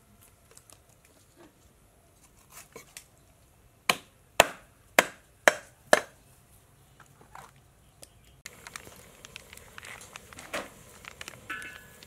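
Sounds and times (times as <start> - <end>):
cleaver chopping on wooden board: 3.9 - 6.2
faint clicks and handling noises: 7.0 - 12.0.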